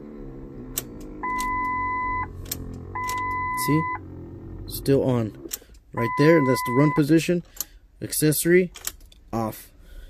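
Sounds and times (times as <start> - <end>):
electronic warning beep: 1.2 - 2.3, 3.0 - 4.0, 6.0 - 7.1.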